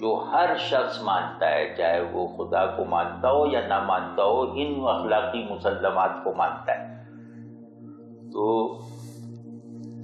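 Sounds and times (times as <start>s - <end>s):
low droning background music: 0.0s - 10.0s.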